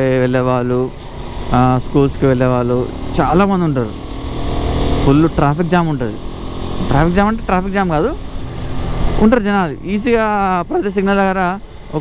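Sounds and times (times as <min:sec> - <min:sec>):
motorbike engine rumble: 0:00.0 - 0:12.0
wind and road noise: 0:00.0 - 0:12.0.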